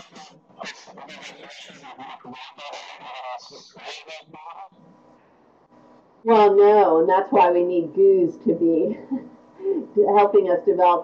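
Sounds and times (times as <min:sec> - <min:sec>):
faint low hum: 0:00.0 - 0:11.0
indistinct voice over conference call: 0:00.0 - 0:11.0.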